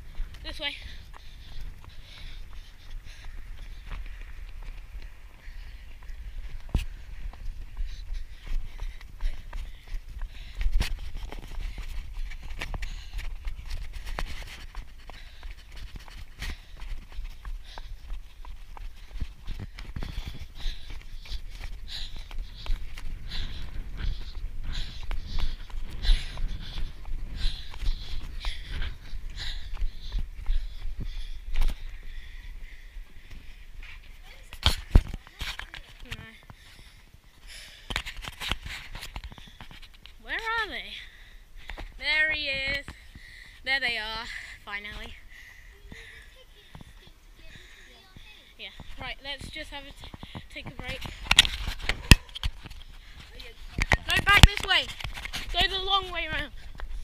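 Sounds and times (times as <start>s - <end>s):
running footsteps on pavement: 0.0s - 57.0s.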